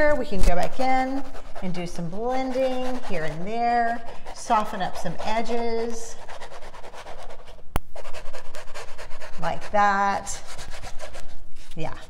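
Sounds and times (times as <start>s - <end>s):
sponge brush scrubbing canvas: 0.0s - 12.0s.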